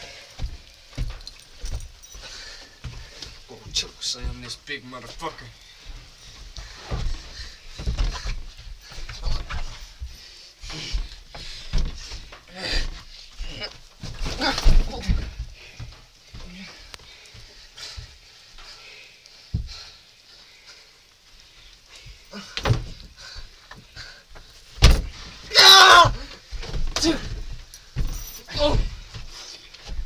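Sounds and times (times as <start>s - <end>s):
people wrestling on a mattress: 5.8s - 18.4s, 22.0s - 30.0s
people grunting: 12.5s - 15.4s, 25.5s - 27.4s, 28.5s - 29.0s.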